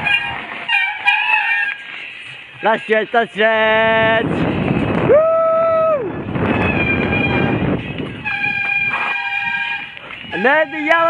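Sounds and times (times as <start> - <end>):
bicycle brakes squealing: 0.0 - 2.1, 6.4 - 11.0.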